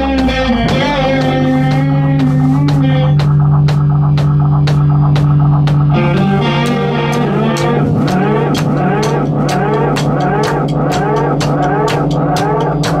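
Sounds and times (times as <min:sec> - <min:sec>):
drum kit beat: 0:00.0 - 0:13.0
electric guitar pitch glides: 0:00.0 - 0:13.0
low drone: 0:00.0 - 0:13.0.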